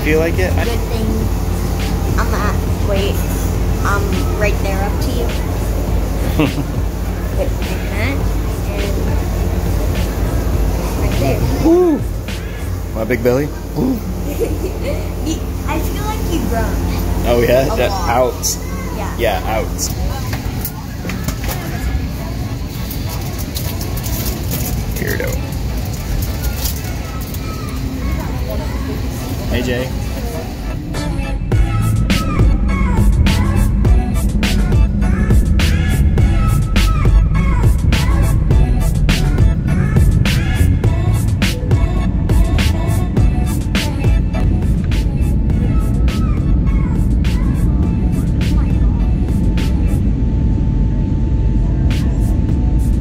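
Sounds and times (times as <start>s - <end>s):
airliner cabin rumble: 0.0s - 53.0s
jet engine and airflow roar: 0.0s - 53.0s
background music with beat: 0.5s - 14.8s, 31.0s - 50.1s.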